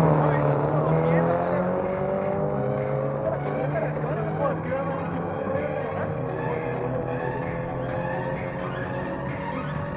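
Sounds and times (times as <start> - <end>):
car engine running steadily: 0.0 - 9.9.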